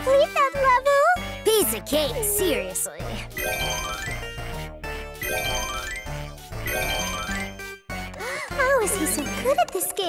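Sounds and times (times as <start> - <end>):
bright rising chime jingle: 3.2 - 7.7.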